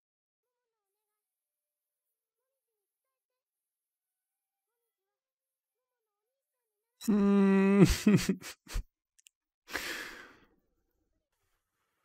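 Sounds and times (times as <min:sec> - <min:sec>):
man sighing: 0:07.0 - 0:08.5.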